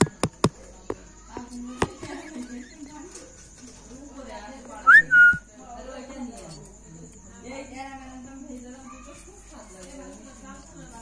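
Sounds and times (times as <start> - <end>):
two-part whistle: 4.8 - 5.5.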